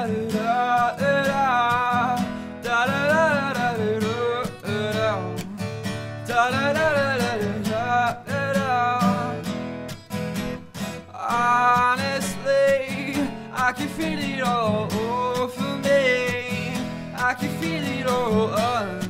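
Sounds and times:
man singing: 0:00.0 - 0:09.7, 0:10.9 - 0:19.0
strummed acoustic guitar: 0:00.0 - 0:19.0.

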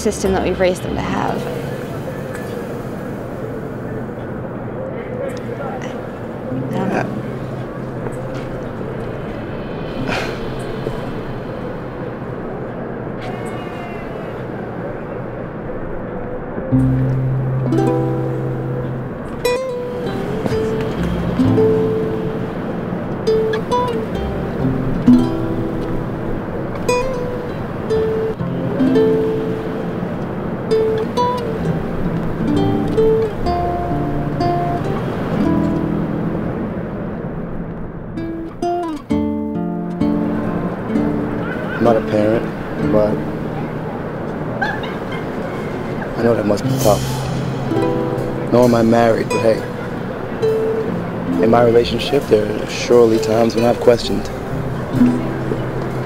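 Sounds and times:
distant city rumble: 0:00.0 - 0:56.0
distant traffic hum: 0:00.0 - 0:56.0.

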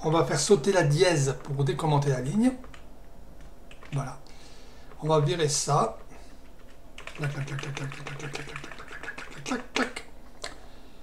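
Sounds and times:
computer keyboard clicks: 0:02.6 - 0:04.0, 0:06.6 - 0:09.3.

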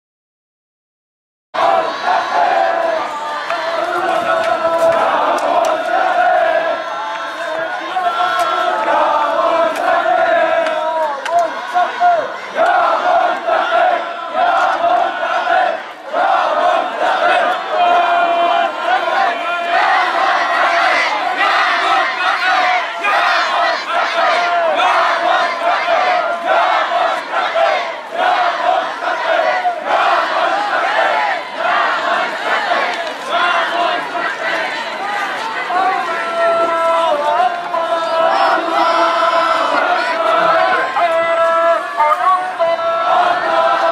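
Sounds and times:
crowd of men chanting: 0:01.6 - 0:43.9.

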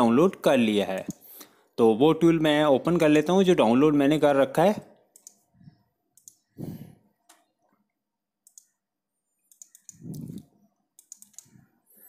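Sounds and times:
computer mouse clicks: 0:05.1 - 0:05.4, 0:06.2 - 0:06.5, 0:08.4 - 0:08.8, 0:09.4 - 0:11.7.

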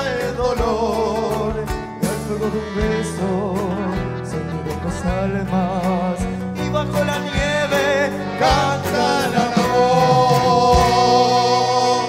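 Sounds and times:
folk band playing: 0:00.0 - 0:12.0
man singing: 0:00.0 - 0:12.0.

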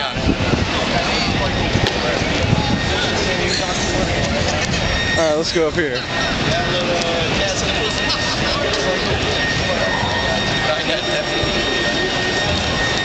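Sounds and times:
indistinct voices: 0:00.0 - 0:13.0
rushing outdoor noise: 0:00.0 - 0:13.0
high-pitched tone: 0:00.8 - 0:13.0.

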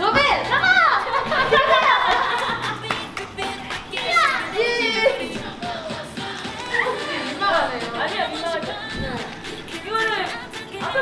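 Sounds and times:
music in a hall: 0:00.0 - 0:11.0.

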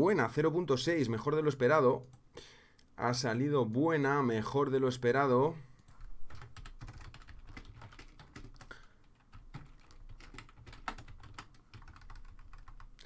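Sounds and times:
typing on keyboard: 0:05.8 - 0:13.0.

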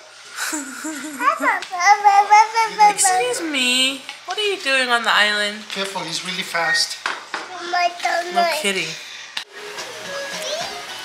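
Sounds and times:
music: 0:09.5 - 0:11.0.

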